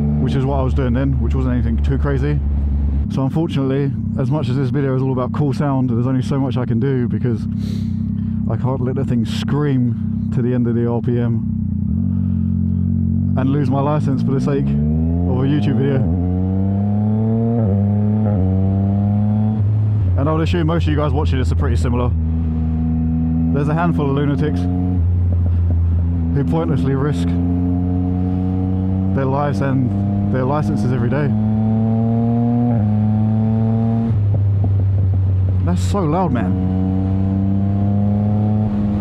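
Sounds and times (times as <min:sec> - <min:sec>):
motorcycle engine pulling on road: 0:00.0 - 0:39.0
exhaust pops: 0:25.1 - 0:26.3, 0:34.1 - 0:36.4.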